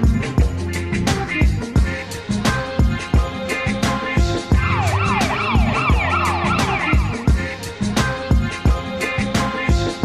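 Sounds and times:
instrumental hip-hop music: 0:00.0 - 0:10.0
siren-like wailing glide: 0:04.6 - 0:07.2.

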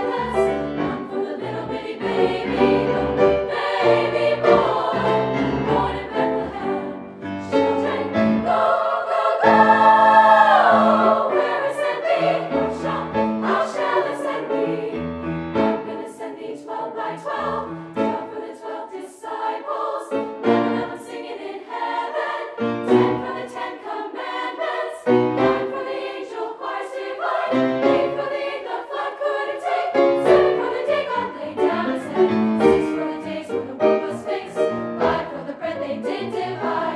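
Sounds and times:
women's choir singing gospel: 0:00.0 - 0:36.9.

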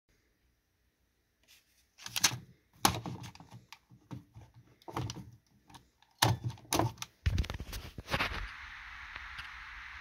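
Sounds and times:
handling knocks clicks and rustles: 0:02.0 - 0:07.5.

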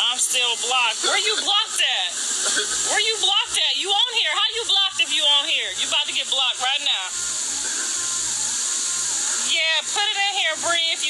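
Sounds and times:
steady high hiss: 0:00.0 - 0:11.0.

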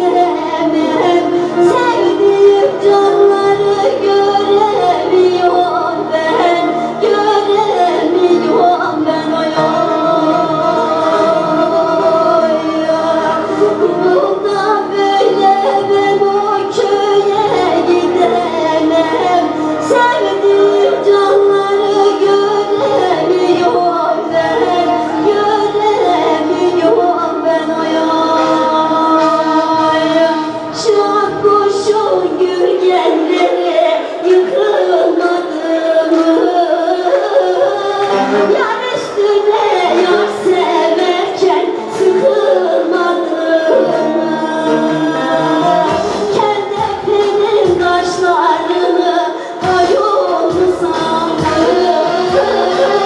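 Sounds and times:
keyboard: 0:00.0 - 0:53.0
long-necked lute playing: 0:00.0 - 0:53.0
woman singing into a microphone: 0:00.0 - 0:53.0.

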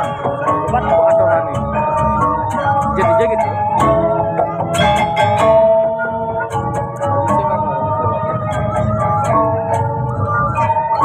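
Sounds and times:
ringing metallophone melody: 0:00.0 - 0:11.0.

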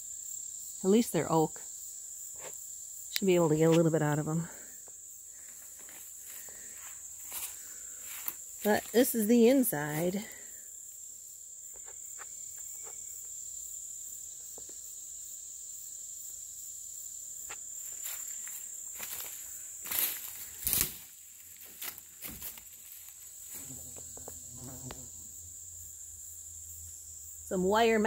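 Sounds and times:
insects chirping: 0:00.0 - 0:28.0
dry brush crackling underfoot: 0:05.4 - 0:10.1, 0:17.8 - 0:23.6.

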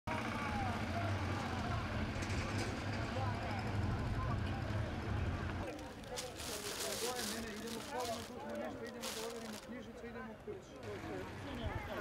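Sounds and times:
vehicle traffic rumble: 0:00.1 - 0:09.9
people talking: 0:05.6 - 0:10.2.

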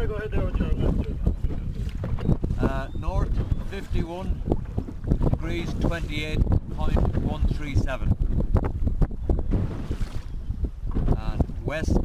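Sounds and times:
sea washing around boat: 0:00.0 - 0:12.0
wind buffeting microphone: 0:00.0 - 0:12.0.

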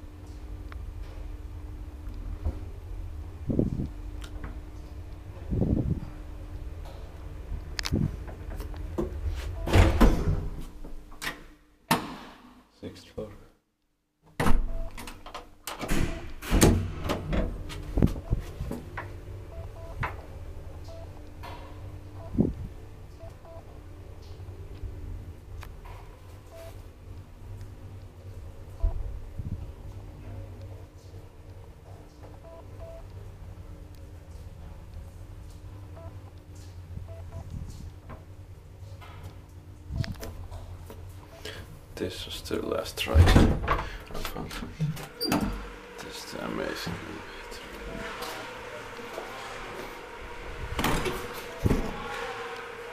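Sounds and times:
elevator low hum: 0:00.0 - 0:11.4, 0:14.5 - 0:52.9.

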